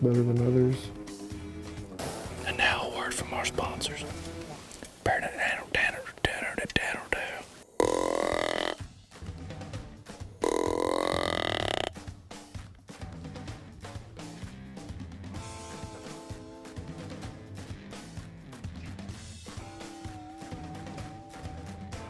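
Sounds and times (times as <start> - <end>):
deer grunt call: 7.7 - 8.8, 10.4 - 12.0.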